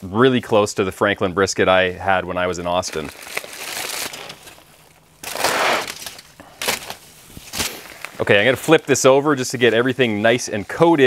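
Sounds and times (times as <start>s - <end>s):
foil crinkling and crackling: 2.4s - 11.0s.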